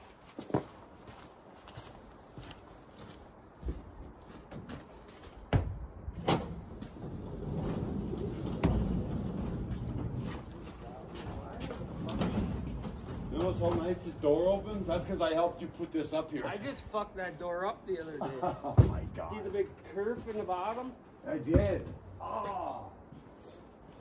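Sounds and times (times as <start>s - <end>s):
low rough background noise: 0.0s - 24.0s.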